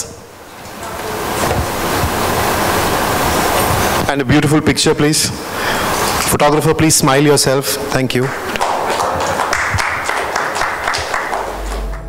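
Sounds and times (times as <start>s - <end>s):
audience applause: 8.2s - 12.0s.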